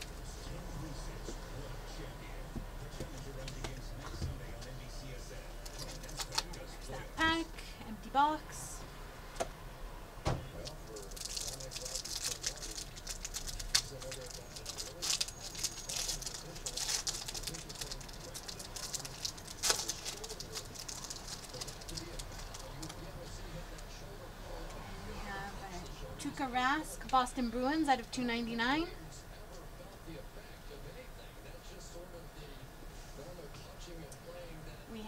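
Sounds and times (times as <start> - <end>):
plastic wrapper crinkling: 5.6 - 6.6, 10.6 - 23.0.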